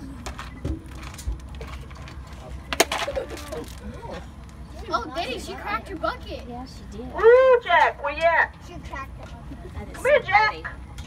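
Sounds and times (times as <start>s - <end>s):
plastic bucket cracking: 2.7s - 3.8s.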